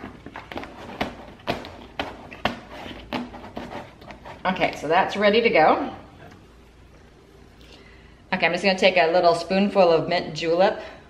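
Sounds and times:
taps and crackles of stencil: 0.0 - 4.4
hand rubbing plastic stencil: 0.0 - 4.8.

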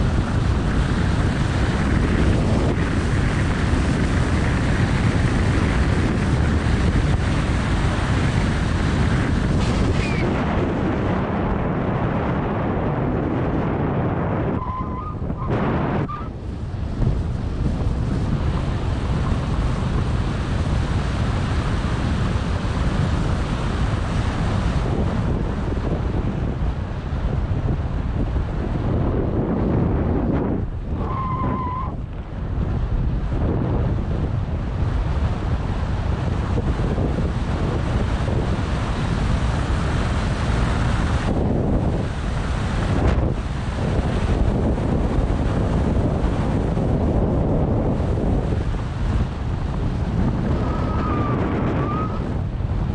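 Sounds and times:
wind rushing on microphone: 0.0 - 52.9
brief squeak: 9.9 - 10.3.

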